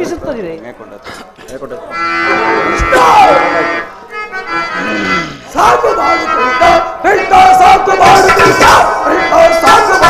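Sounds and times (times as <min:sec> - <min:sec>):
harmonium holding notes: 0:01.9 - 0:10.0
person singing loudly: 0:04.8 - 0:10.0.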